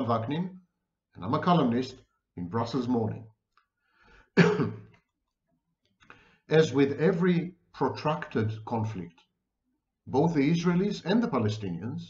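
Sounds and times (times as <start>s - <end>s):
man clearing throat with cough: 4.4s - 4.9s.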